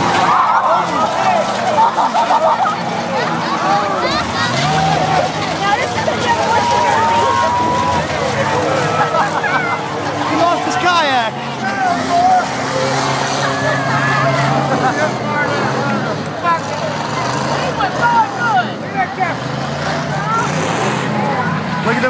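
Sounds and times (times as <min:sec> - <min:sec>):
car engines running: 0:00.0 - 0:22.0
crowd chatter and shouts: 0:00.0 - 0:22.0.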